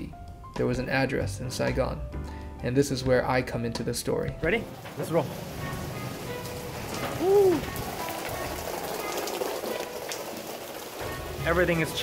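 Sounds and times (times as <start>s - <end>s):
rain on concrete: 4.6s - 12.0s.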